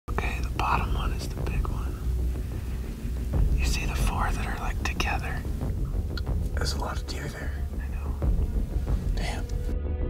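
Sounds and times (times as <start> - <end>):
person whispering: 0.1 - 2.1, 3.6 - 5.4, 9.1 - 9.6
low rumble: 0.1 - 9.8.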